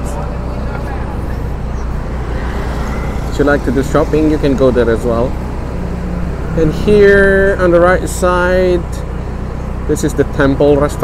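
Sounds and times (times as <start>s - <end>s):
car engine hum: 0.0s - 11.0s
road noise: 0.0s - 11.0s.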